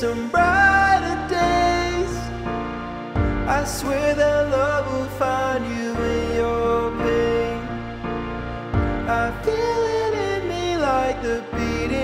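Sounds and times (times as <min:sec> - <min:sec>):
deep bass: 0:00.0 - 0:12.0
man singing slow ballad: 0:00.0 - 0:12.0
sustained backing chords: 0:00.0 - 0:12.0.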